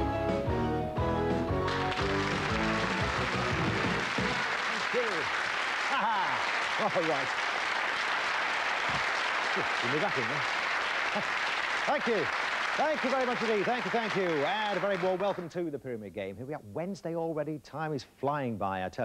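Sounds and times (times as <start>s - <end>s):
game show theme music: 0.0s - 5.0s
audience applause: 1.6s - 15.6s
man speaking: 11.9s - 19.0s.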